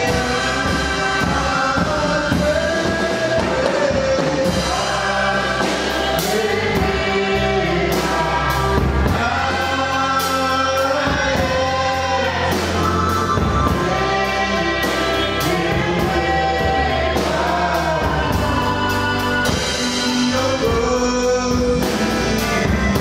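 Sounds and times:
drum beat: 0.0 - 18.8
group singing gospel song: 0.0 - 23.0
steady bass line: 0.0 - 23.0.

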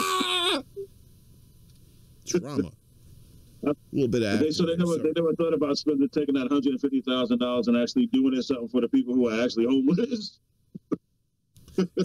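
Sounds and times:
man wailing: 0.0 - 0.6.

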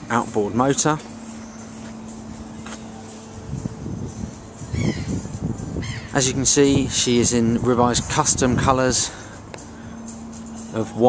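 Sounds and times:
low rumble: 1.0 - 10.8
bird calling: 4.7 - 6.3.

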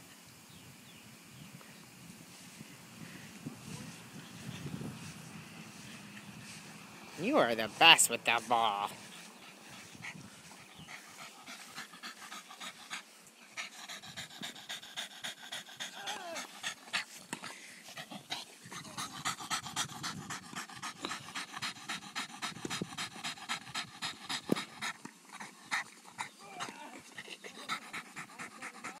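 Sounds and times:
dog panting rapidly: 3.3 - 29.0.

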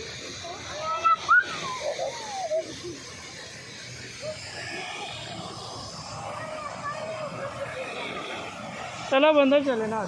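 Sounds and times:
distant people talking: 0.0 - 10.0
steady background noise: 0.0 - 10.0.

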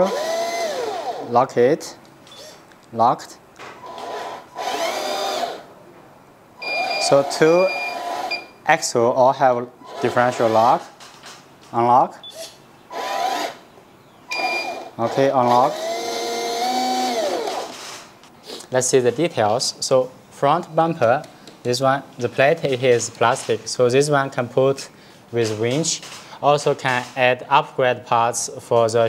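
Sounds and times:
electric motor whining: 3.9 - 5.7, 14.3 - 17.8.

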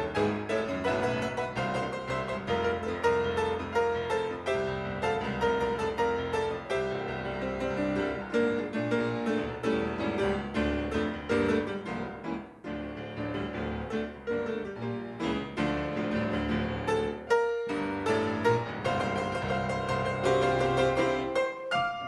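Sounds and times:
solo grand piano: 0.0 - 22.0.

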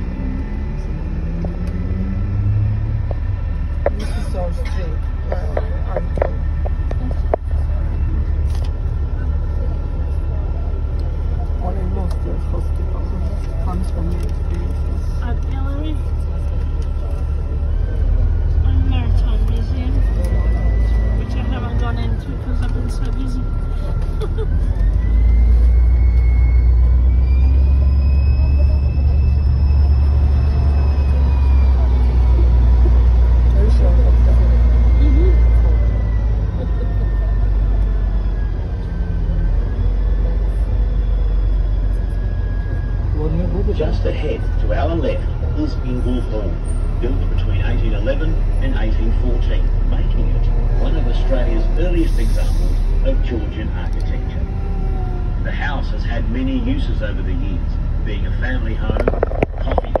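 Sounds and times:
drivetrain whine rising in pitch: 0.0 - 4.0, 5.0 - 52.0
bus engine rumble: 0.0 - 60.0.

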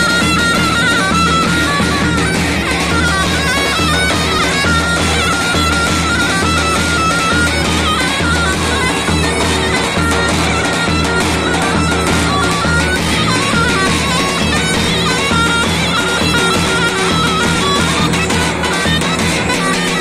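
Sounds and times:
shrill reedy wind melody: 0.0 - 20.0
steady drum beat: 0.0 - 20.0.

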